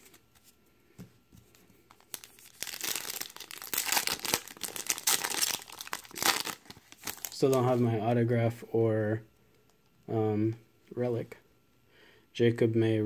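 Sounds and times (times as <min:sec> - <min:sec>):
foil wrapper crinkling and tearing: 0:01.9 - 0:07.6.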